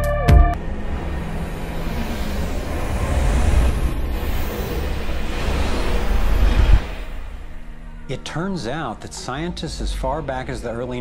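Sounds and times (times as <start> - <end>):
deep rumbling drone with hiss: 0.6 - 11.0.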